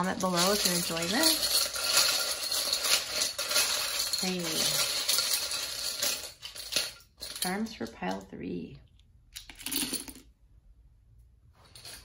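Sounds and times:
metal charms jingling: 0.0s - 7.7s.

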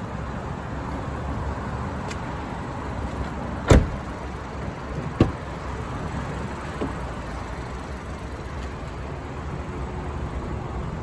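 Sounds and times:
steady background noise: 0.0s - 11.0s
car door shutting: 3.6s - 4.1s, 4.9s - 5.5s.

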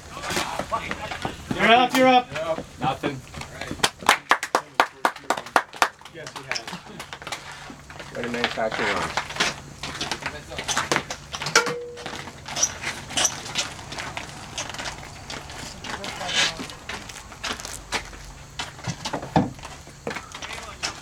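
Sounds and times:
indistinct talk: 13.4s - 18.0s.

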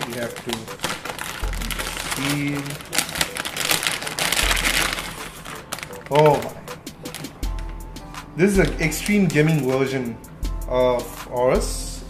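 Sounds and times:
plastic bag crinkling: 0.0s - 7.8s, 8.6s - 9.7s.

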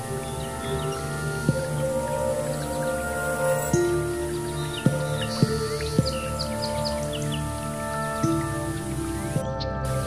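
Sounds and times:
ambient music with held tones: 0.0s - 10.0s.

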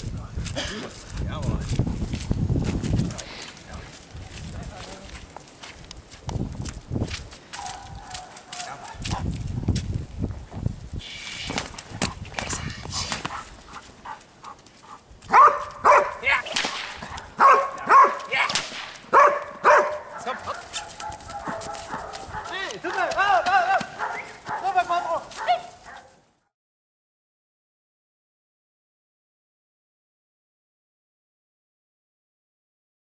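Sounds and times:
dog barking: 7.6s - 9.2s, 15.3s - 16.4s, 17.0s - 18.4s, 19.1s - 22.7s, 23.9s - 26.2s.

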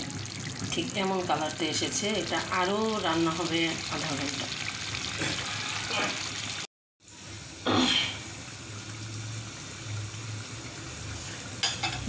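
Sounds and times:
curry sizzling in a pot: 0.0s - 12.0s.

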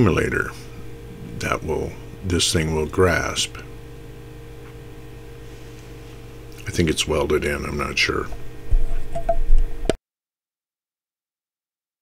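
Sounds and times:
low rumble: 0.0s - 5.2s.

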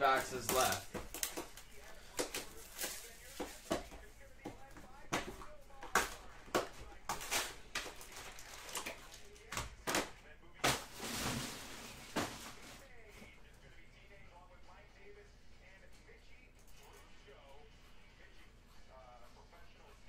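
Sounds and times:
foil packs crinkling: 0.0s - 4.1s, 5.3s - 12.9s.

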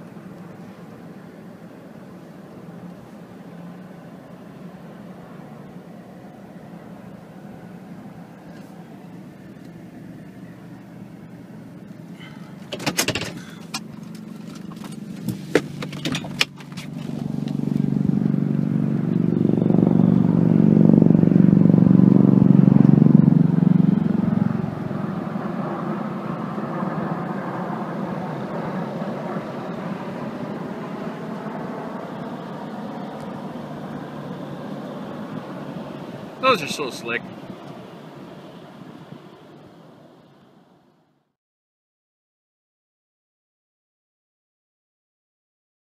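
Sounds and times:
aircraft droning rumble overhead: 0.0s - 41.3s.

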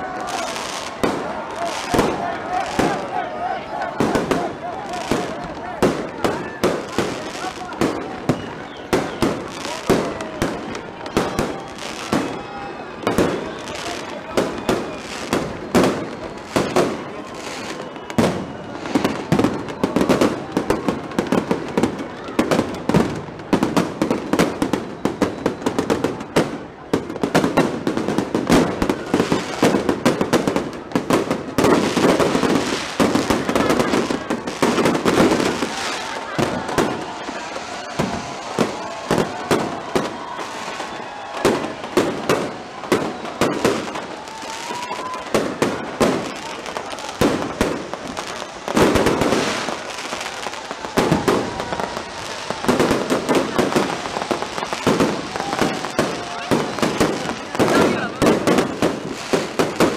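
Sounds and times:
fireworks cracks and bangs: 0.0s - 59.9s.

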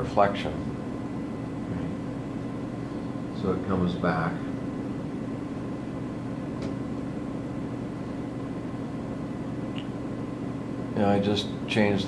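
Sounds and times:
projector cooling fan hum: 0.0s - 12.0s.

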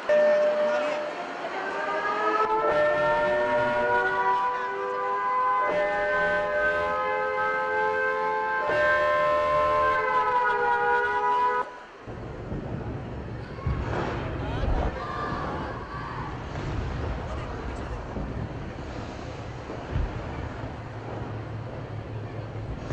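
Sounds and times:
air-raid siren: 0.0s - 12.0s.

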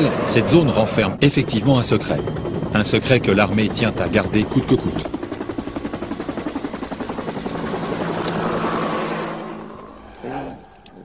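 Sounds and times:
helicopter rotor beating: 0.0s - 11.0s.

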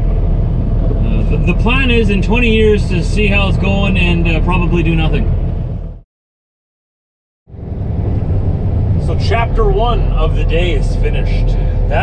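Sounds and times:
truck engine and road rumble: 0.0s - 6.0s, 7.5s - 12.0s.

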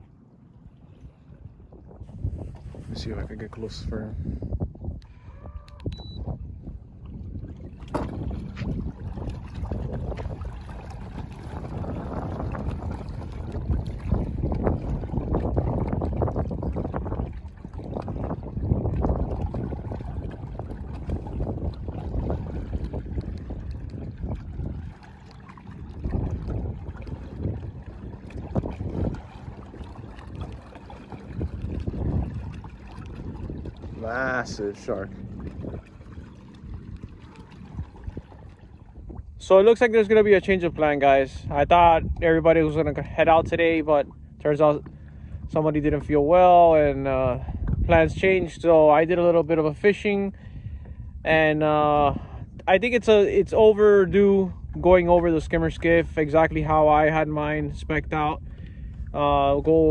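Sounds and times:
water lapping against boat hull: 0.0s - 59.9s
wind buffeting microphone: 0.0s - 59.9s.

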